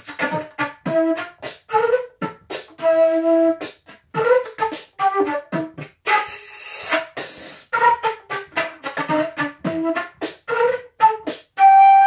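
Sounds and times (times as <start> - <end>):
flute notes: 0.0 - 12.0
breathy air rush into flute: 6.1 - 7.8.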